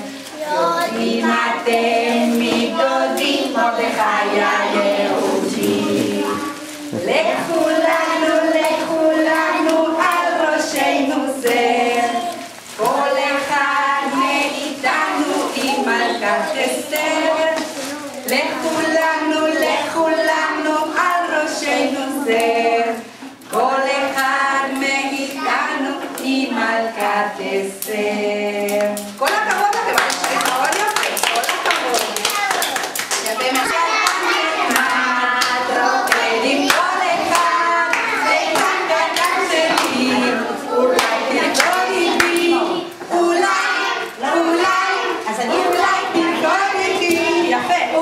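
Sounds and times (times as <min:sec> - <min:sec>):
woman and children singing: 0:00.0 - 0:31.0, 0:33.0 - 0:48.0
people clapping hands: 0:28.6 - 0:40.2, 0:40.9 - 0:43.7.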